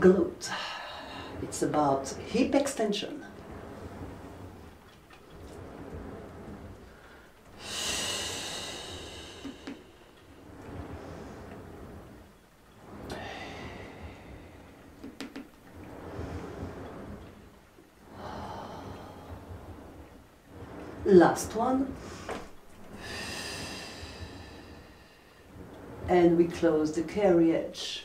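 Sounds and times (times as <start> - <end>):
woman breathing deeply: 5.6 - 11.8, 12.8 - 15.0, 22.0 - 25.9.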